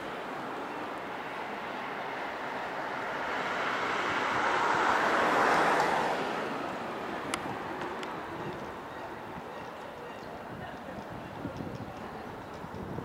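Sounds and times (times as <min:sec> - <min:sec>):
vehicle passing: 0:00.0 - 0:09.5.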